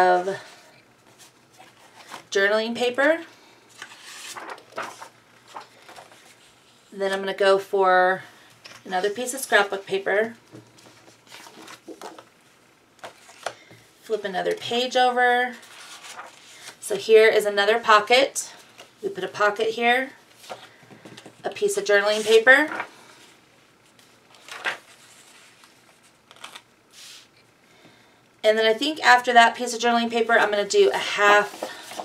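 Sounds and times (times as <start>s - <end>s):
paper rustling: 1.1s - 2.3s, 3.7s - 7.2s, 10.7s - 12.3s, 15.5s - 16.8s, 23.8s - 27.3s, 31.0s - 32.0s
paper sliding across paper: 26.9s - 27.3s, 31.4s - 32.0s.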